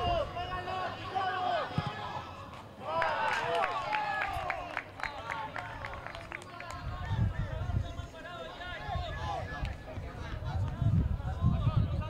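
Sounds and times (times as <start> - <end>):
players calling and shouting: 0.0 - 12.0.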